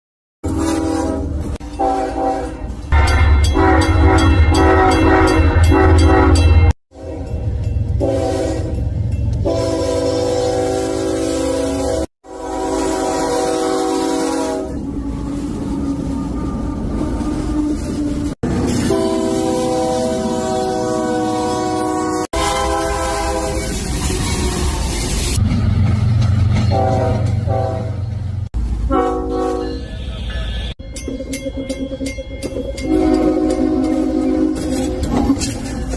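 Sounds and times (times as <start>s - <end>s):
locomotive air horn blasts: 0.4s - 25.4s, 26.7s - 28.0s, 28.9s - 30.8s, 32.8s - 35.2s
locomotive engines rumbling: 0.4s - 35.9s
freight cars rolling: 22.3s - 35.9s.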